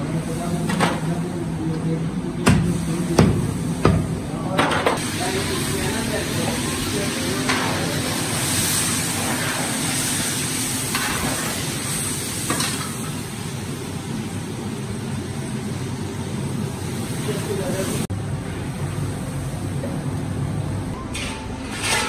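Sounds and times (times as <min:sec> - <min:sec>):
meat frying in a wok: 0:05.0 - 0:18.1.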